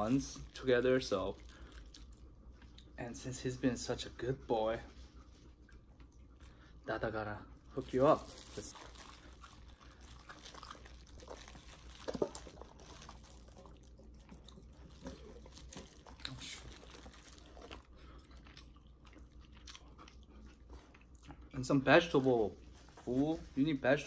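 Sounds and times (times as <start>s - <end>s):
soft chewing: 0.0s - 3.0s, 4.6s - 6.9s, 7.5s - 23.6s.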